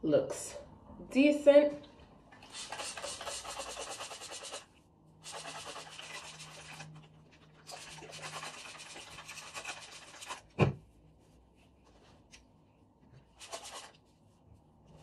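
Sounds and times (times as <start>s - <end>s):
spray bottle misting water: 2.5s - 4.6s.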